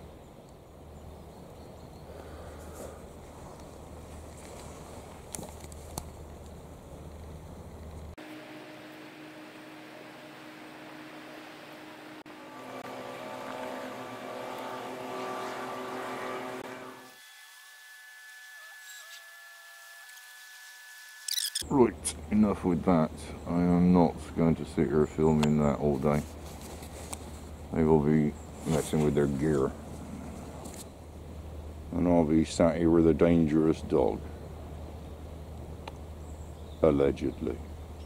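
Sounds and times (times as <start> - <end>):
low outdoor rumble with hiss: 0.0 - 16.7, 21.6 - 38.0
diesel engine hum: 2.1 - 17.2.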